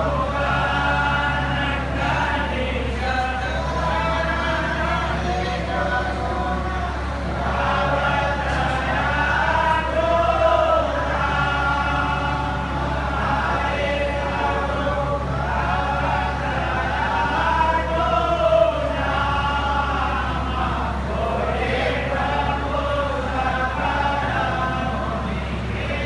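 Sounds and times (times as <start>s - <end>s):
group singing a hymn: 0.0s - 26.0s
steady low hum: 0.0s - 26.0s.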